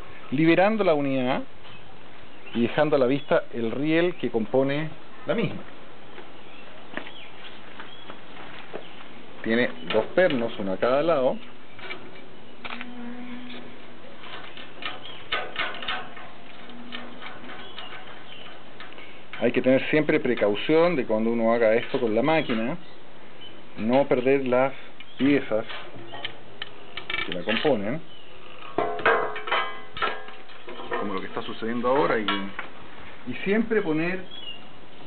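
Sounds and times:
steady background hiss: 0.0 - 35.0.

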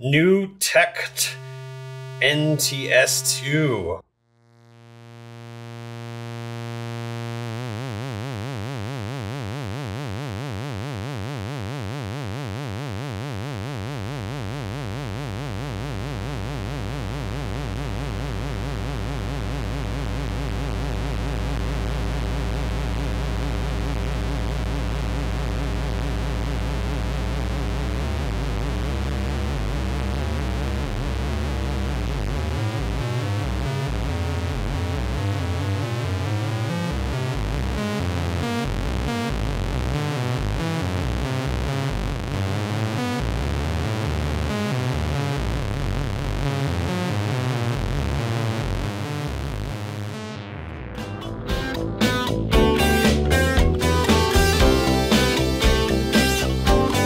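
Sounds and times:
buzzy wavering synthesizer drone: 1.4 - 2.2, 4.3 - 42.1
deep stuttering synth bass: 14.3 - 57.0.

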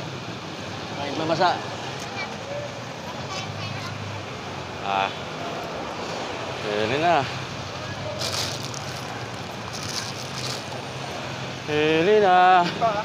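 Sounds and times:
street traffic hum: 0.0 - 13.0
vehicles hissing past: 0.0 - 13.0.

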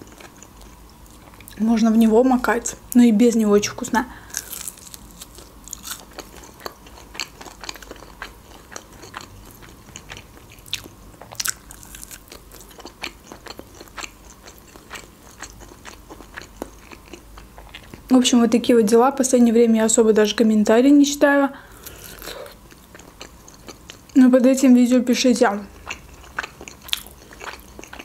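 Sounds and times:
person chewing with wet smacks: 4.4 - 18.1, 21.9 - 24.2, 25.7 - 28.0.

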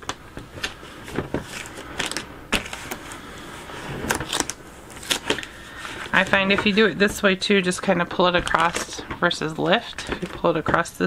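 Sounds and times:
tape rubbing and crackling: 0.0 - 7.2, 8.1 - 10.5.

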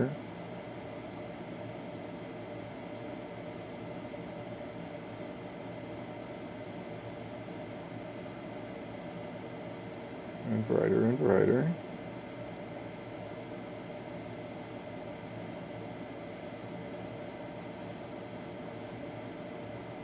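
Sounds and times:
room hum and hiss: 0.0 - 20.0.

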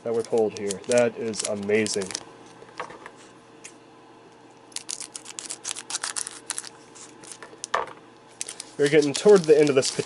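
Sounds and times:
foil wrapper crinkling: 0.0 - 2.3, 4.7 - 7.7, 8.3 - 10.0
wrapper rustle: 0.0 - 2.3, 4.7 - 7.7, 8.3 - 10.0.

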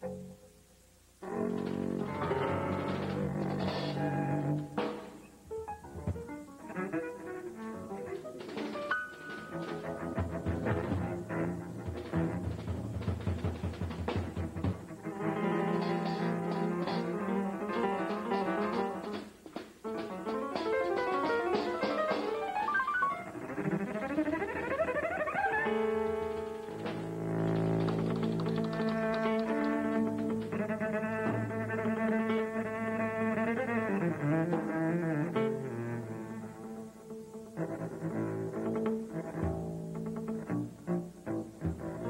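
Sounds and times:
jazz trio improvising: 0.0 - 42.0.

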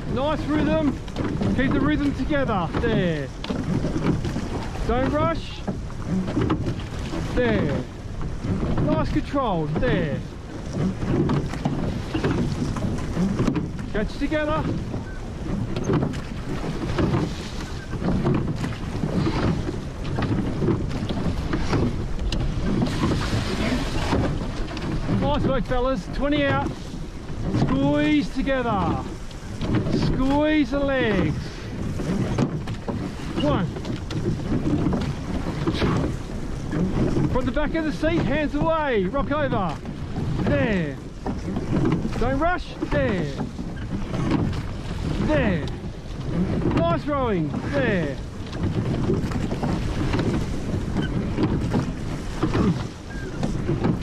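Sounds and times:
oars splashing: 0.0 - 54.0
water rushing along hull: 0.0 - 54.0
wind buffeting microphone: 0.0 - 54.0.

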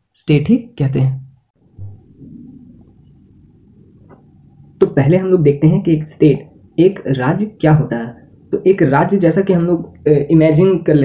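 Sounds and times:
low-pitched room hum: 0.2 - 11.0.

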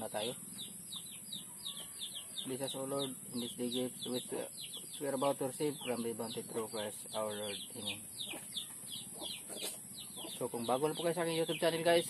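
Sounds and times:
bird peeping: 0.0 - 12.0.

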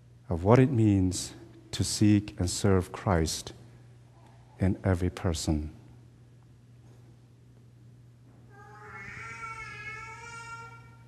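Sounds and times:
long high-pitched cry: 8.5 - 11.0.

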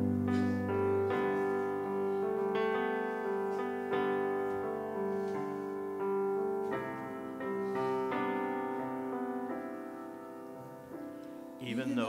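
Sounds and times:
piano slow held chords: 0.0 - 12.0.

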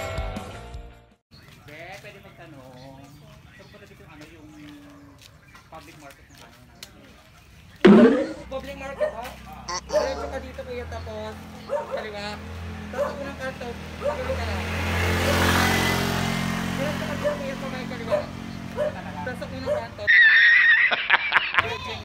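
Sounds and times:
voices: 1.4 - 20.2
vehicle engine passing: 7.8 - 20.1
dog barking: 8.8 - 10.6, 11.5 - 15.7, 17.1 - 20.1.

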